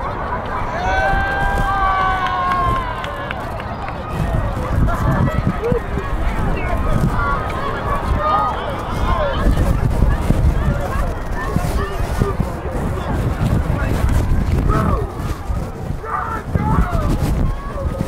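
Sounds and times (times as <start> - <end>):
people shouting and calling: 0.0 - 18.0
wind rumble on microphone: 0.0 - 18.0.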